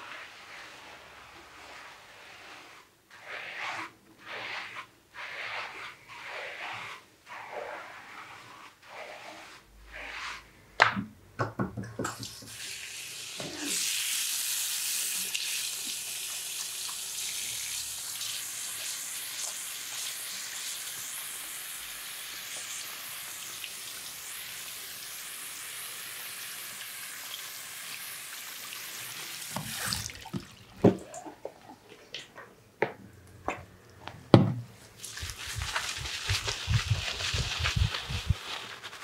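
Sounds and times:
water spraying from sink sprayer: 0:12.2 - 0:31.0, 0:35.0 - 0:38.8.

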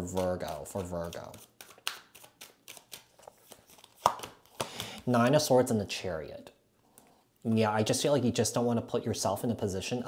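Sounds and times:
cards snapping and tapping: 0:00.0 - 0:05.0.

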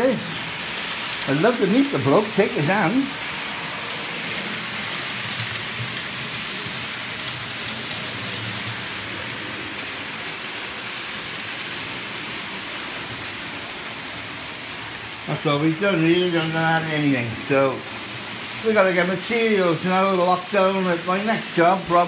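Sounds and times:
model trains whirring on rails: 0:00.0 - 0:22.0.

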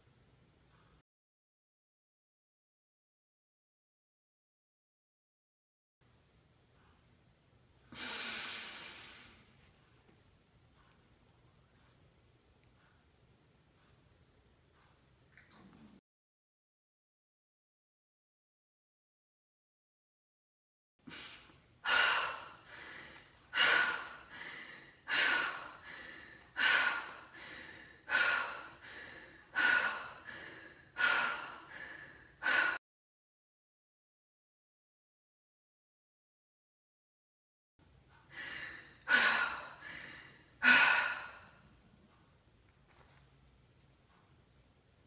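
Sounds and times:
woman breathing forcefully: 0:21.1 - 0:32.8, 0:38.1 - 0:41.8.

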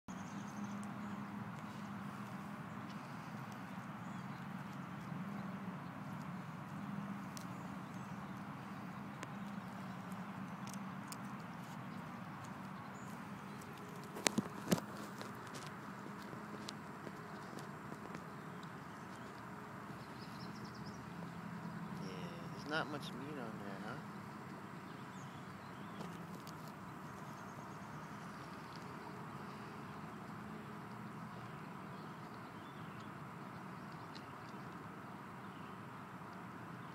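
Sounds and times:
dog chewing bones: 0:04.4 - 0:20.2.

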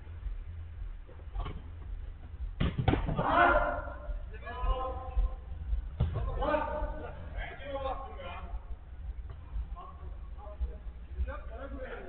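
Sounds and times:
football kick thuds: 0:01.1 - 0:04.2, 0:05.2 - 0:07.1
player shouting: 0:03.2 - 0:04.1.

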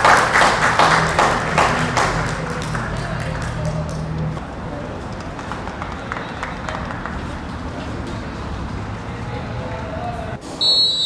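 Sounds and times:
steady crowd noise: 0:00.0 - 0:11.0
distant shouts and voices: 0:08.7 - 0:11.0.

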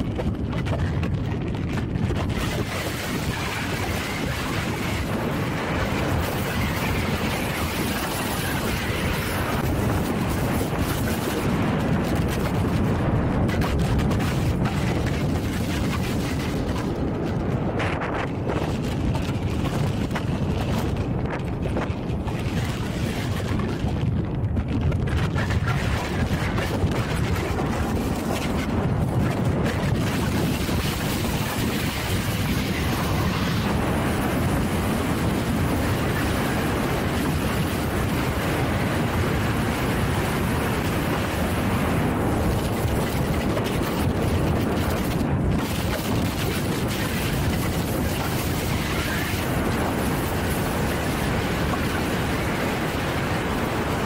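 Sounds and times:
wind buffeting microphone: 0:00.0 - 0:54.0.

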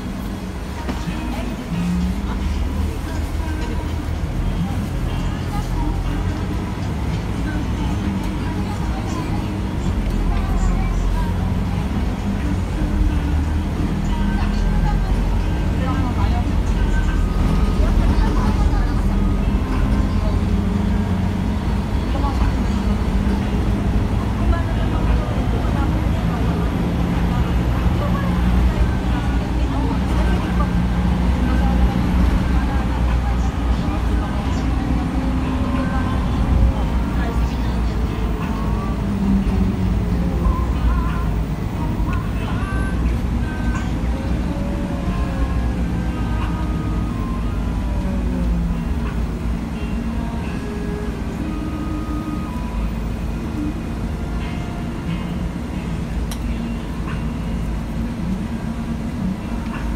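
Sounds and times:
bus diesel engine rumble: 0:00.0 - 0:59.9.

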